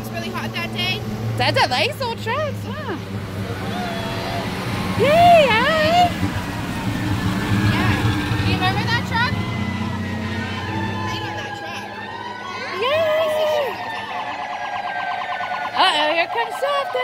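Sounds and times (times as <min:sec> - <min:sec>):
fire engine driving past: 0:00.0 - 0:17.0.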